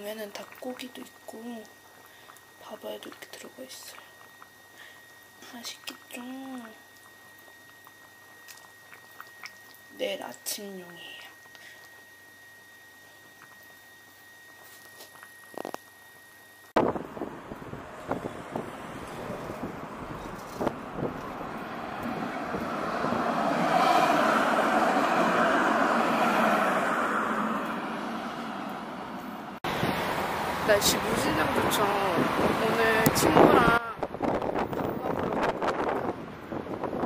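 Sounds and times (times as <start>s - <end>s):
passing cars: 16.8s - 33.5s
vehicle passing close: 16.8s - 33.5s.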